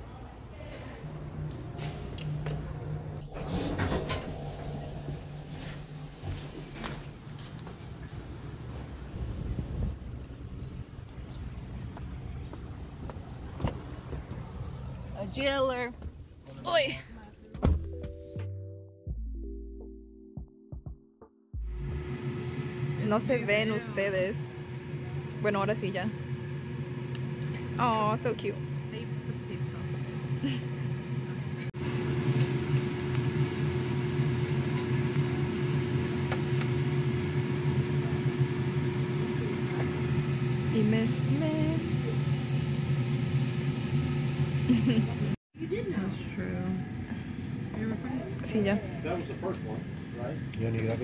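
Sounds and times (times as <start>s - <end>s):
ventilation fan humming: 0.0s - 9.1s, 21.8s - 51.0s.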